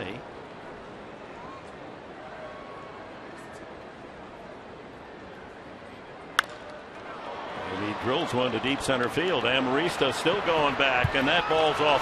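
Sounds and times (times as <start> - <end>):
ballpark crowd noise: 0.0 - 12.0
baseball bat cracking ball: 6.4 - 6.8.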